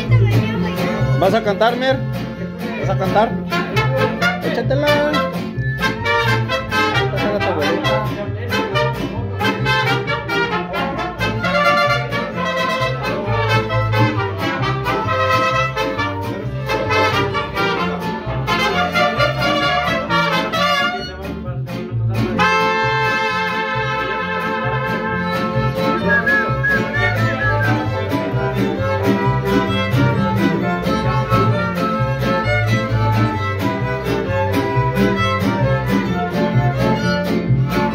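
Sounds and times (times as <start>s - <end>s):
mariachi band playing: 0.0s - 37.9s.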